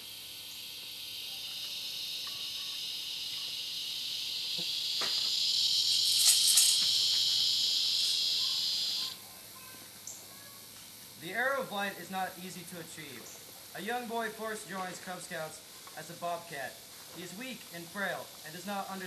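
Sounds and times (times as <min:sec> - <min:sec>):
insect buzzing: 0:00.0 - 0:19.0.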